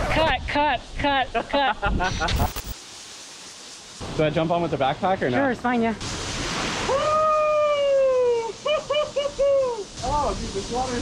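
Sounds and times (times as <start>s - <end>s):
faint stream hiss: 0.2s - 11.0s.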